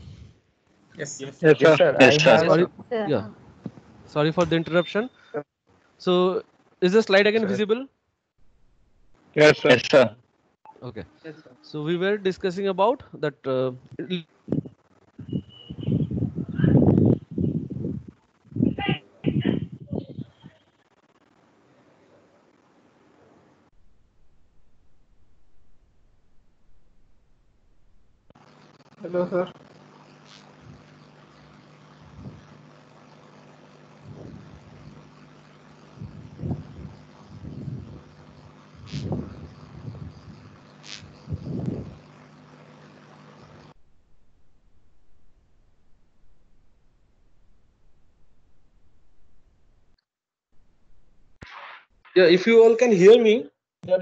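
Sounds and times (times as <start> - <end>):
low electrical hum: 0.0 - 50.0
garbled distorted call audio: 1.0 - 2.8, 9.4 - 12.4, 13.9 - 16.8, 18.4 - 21.1, 28.4 - 43.6
muffled low thumps: 34.0 - 34.8, 38.8 - 42.0.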